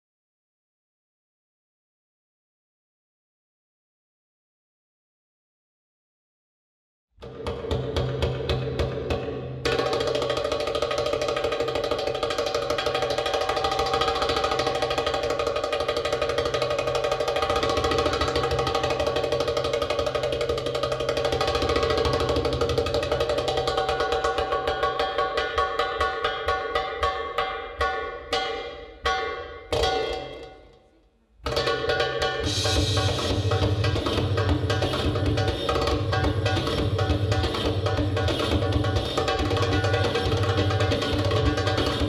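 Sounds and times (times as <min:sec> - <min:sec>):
hand drum solo: 0:07.2 - 0:30.6, 0:31.4 - 0:42.0.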